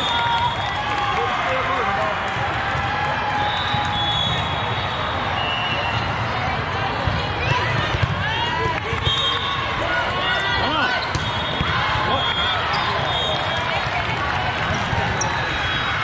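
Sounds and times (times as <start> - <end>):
sneakers squeaking on floor: 12.7 - 13.2.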